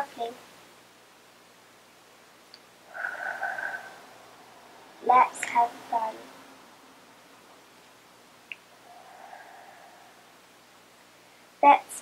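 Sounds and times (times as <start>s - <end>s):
child breathing faintly: 8.8s - 10.4s.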